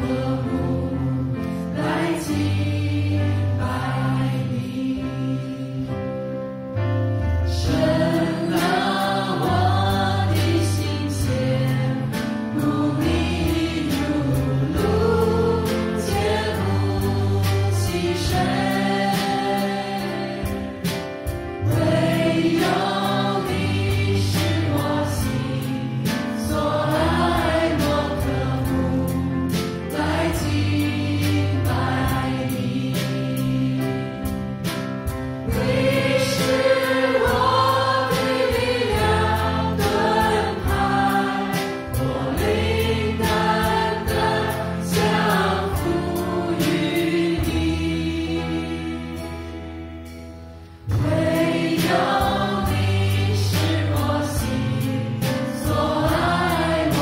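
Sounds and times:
group singing into microphones: 0.0s - 6.2s, 7.5s - 34.5s, 35.4s - 49.7s, 50.9s - 57.0s
drum kit with cymbal hits: 0.0s - 6.4s, 7.1s - 57.0s
keyboard: 0.0s - 57.0s.

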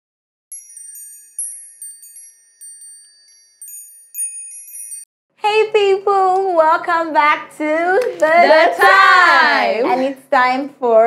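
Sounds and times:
twinkling bell-like chimes: 0.5s - 5.1s.

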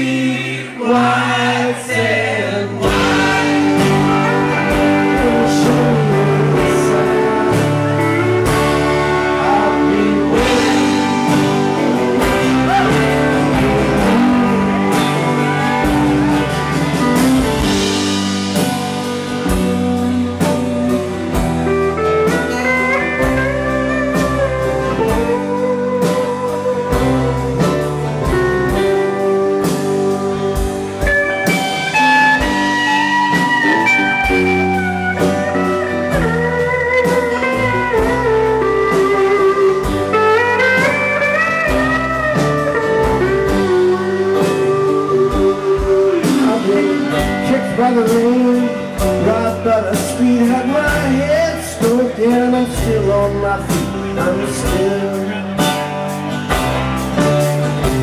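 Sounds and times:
bass: 0.0s - 58.0s
strummed acoustic guitar: 0.0s - 58.0s
pedal steel guitar: 2.8s - 58.0s
steady drum beat: 2.8s - 58.0s.

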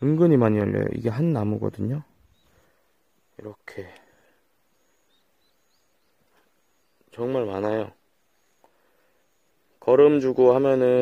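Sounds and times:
distant birds chirping: 0.0s - 11.0s.

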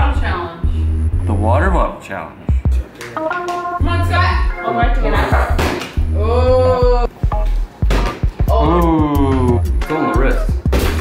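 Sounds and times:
deep bass line: 0.0s - 1.9s, 3.8s - 11.0s.

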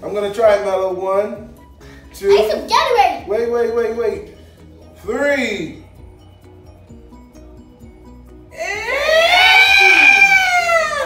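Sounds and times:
person screaming high-pitched: 8.6s - 11.0s.

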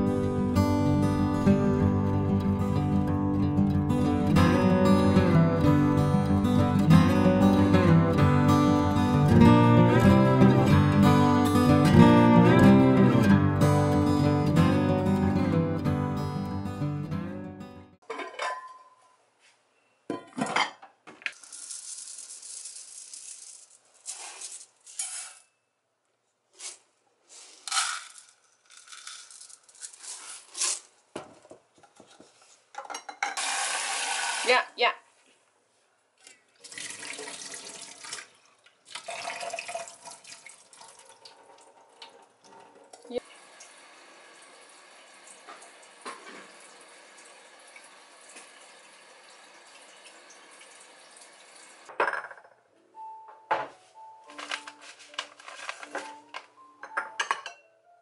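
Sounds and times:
guitar background music: 0.0s - 18.0s, 52.8s - 58.0s
pot clattering in steel sink: 18.0s - 19.0s
dry rice pouring into pot: 21.4s - 25.3s, 33.4s - 34.5s.

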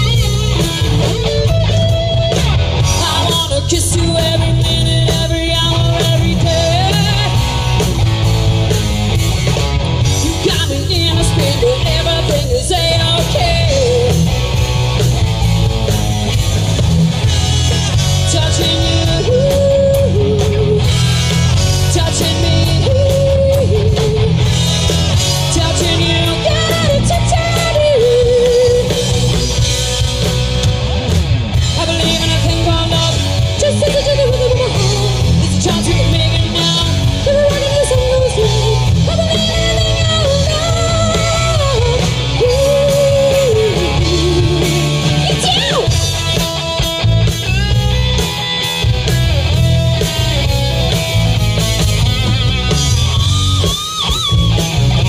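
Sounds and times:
bass guitar: 0.0s - 55.0s
drums: 0.0s - 55.0s
electric guitar: 0.0s - 55.0s
live rock band instrumental: 0.0s - 55.0s
sliding lead melody: 0.0s - 55.0s.

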